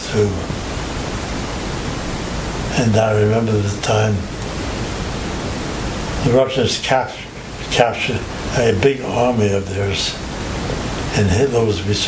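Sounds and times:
man speaking: 0:00.0 - 0:00.5, 0:02.7 - 0:04.3, 0:06.2 - 0:10.2, 0:11.1 - 0:12.0
steady background hiss: 0:00.0 - 0:12.0.

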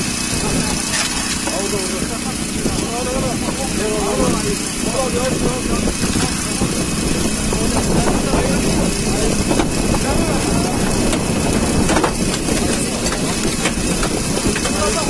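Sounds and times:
engine running steadily: 0:00.0 - 0:15.0
indistinct voices: 0:00.0 - 0:15.0.

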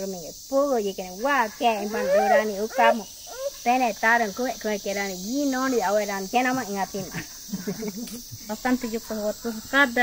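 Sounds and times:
high-pitched insect chorus: 0:00.0 - 0:10.0
woman's voice drawing out a note: 0:01.9 - 0:03.0.

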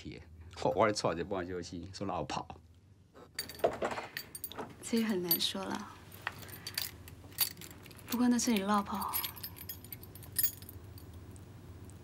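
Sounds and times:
metallic jingling and clinking: 0:03.3 - 0:11.2
people speaking: 0:08.1 - 0:09.3.

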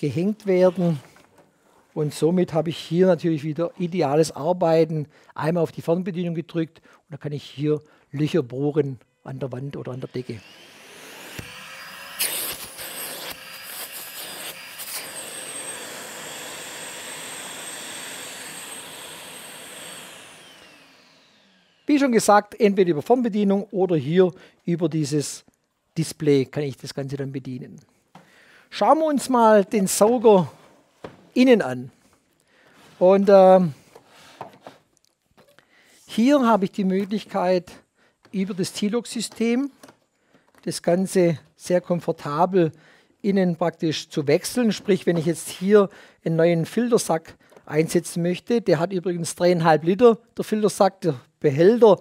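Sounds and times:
dust extractor motor whining: 0:09.9 - 0:21.9
motor winding down: 0:09.9 - 0:21.9.

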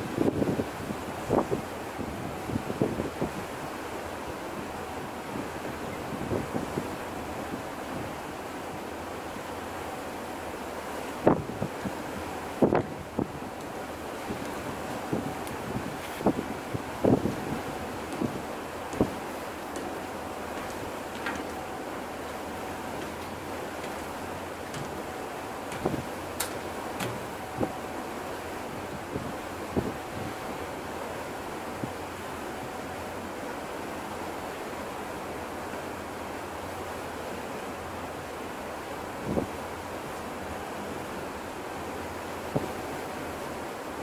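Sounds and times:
rush of wind and water: 0:00.0 - 0:44.0
short knocks: 0:22.9 - 0:27.7.

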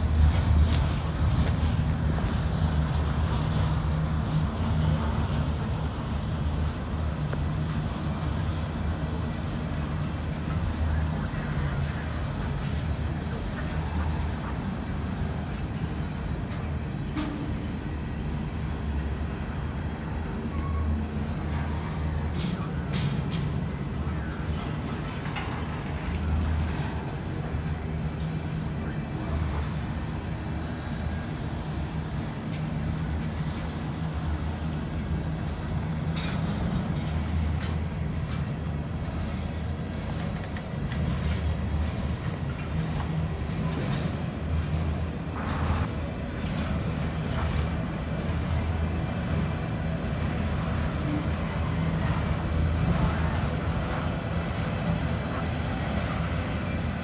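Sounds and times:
freight cars rolling on rails: 0:00.0 - 0:57.0.

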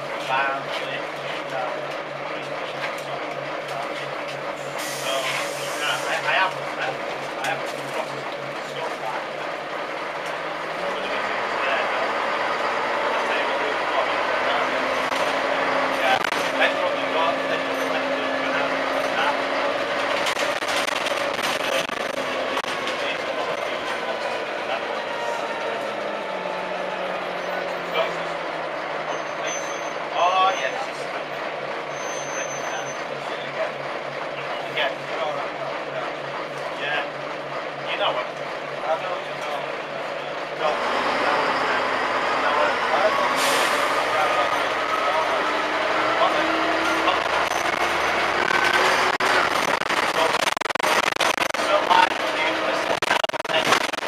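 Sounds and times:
bus diesel engine: 0:00.0 - 0:54.0
air brake hiss: 0:04.7 - 0:06.2, 0:43.4 - 0:44.0.

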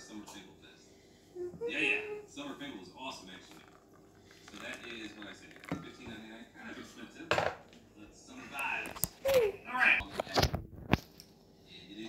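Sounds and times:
faint background speech: 0:00.0 - 0:11.0
kitchenware clatter: 0:04.9 - 0:06.2, 0:07.3 - 0:07.7
kitchenware knocking on counter: 0:07.3 - 0:07.6.

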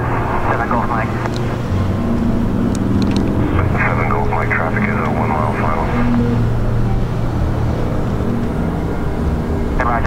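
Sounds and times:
small plane engine droning overhead: 0:00.0 - 0:10.0.

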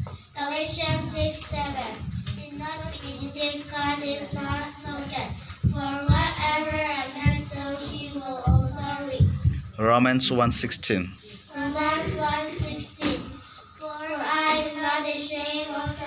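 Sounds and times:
girls chanting into microphones: 0:00.0 - 0:09.8, 0:11.3 - 0:16.0
microphone bumps: 0:00.7 - 0:10.6.

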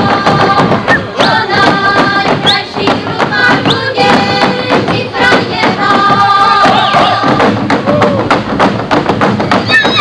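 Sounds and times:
boots stamping on a stage: 0:00.0 - 0:10.0.

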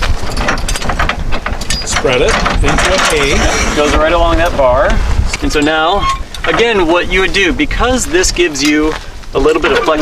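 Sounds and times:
metal tow bar clicking and clanking: 0:00.0 - 0:07.0
steady low rumble: 0:00.0 - 0:10.0.

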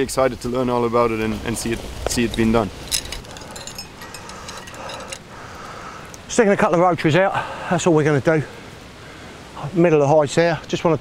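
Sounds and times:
metal decoy arms clicking and rattling: 0:02.2 - 0:05.4.

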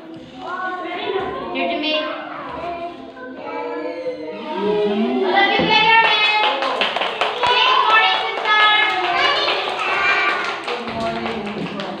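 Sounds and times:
voices in a room: 0:00.0 - 0:12.0.

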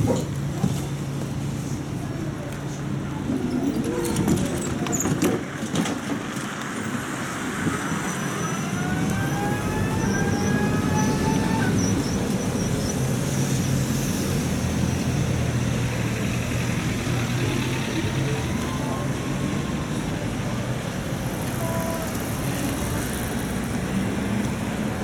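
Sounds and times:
street traffic noise: 0:00.0 - 0:25.0
tram pulling away: 0:00.0 - 0:25.0.

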